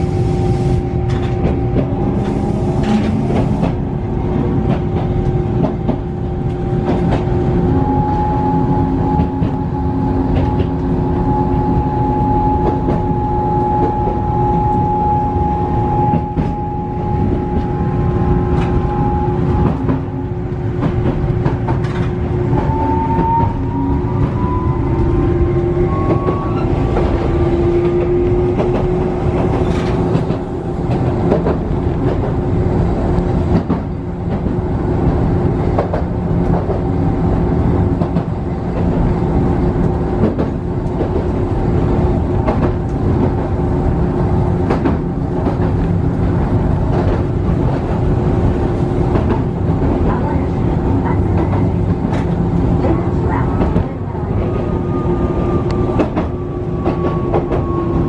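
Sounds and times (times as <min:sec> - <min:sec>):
tram wheels rumbling on rail: 0:00.0 - 0:58.0.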